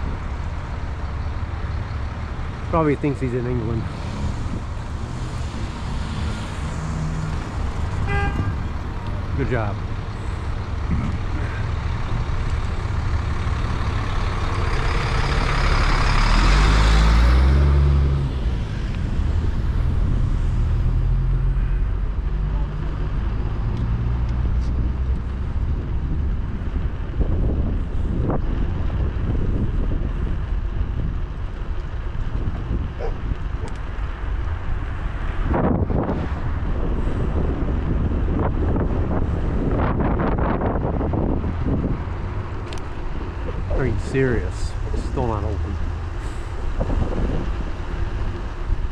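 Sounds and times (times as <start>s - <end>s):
road traffic: 0.0s - 48.9s
vehicle passing loudly: 2.3s - 26.2s, 32.6s - 48.9s
wind on microphone: 23.2s - 48.9s.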